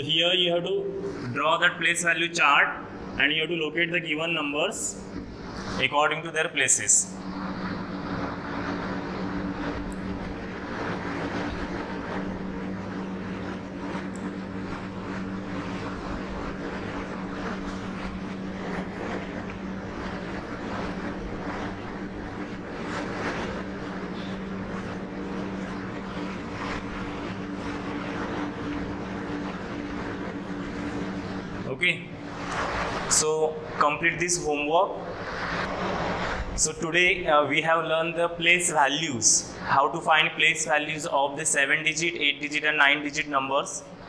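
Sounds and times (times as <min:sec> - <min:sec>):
machine hum: 0:00.0 - 0:44.0.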